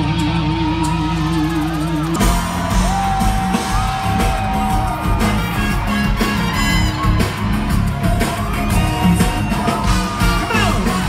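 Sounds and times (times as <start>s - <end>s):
crowd yelling and whooping: 0.0s - 11.0s.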